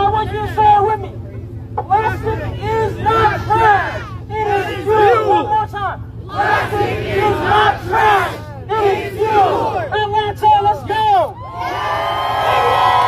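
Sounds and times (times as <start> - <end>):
crowd cheering: 1.8 - 5.5, 6.3 - 9.9, 10.7 - 13.0
crowd chanting and shouting: 1.8 - 10.9.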